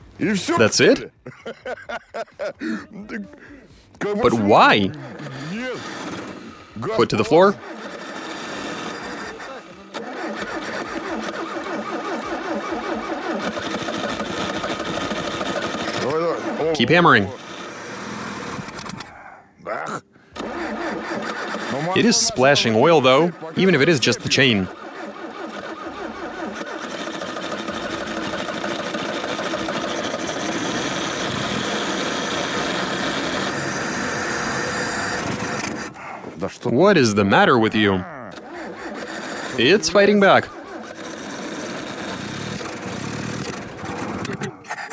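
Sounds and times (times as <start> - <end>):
car engine cranking and running: 3.9 - 19.2, 20.3 - 44.9.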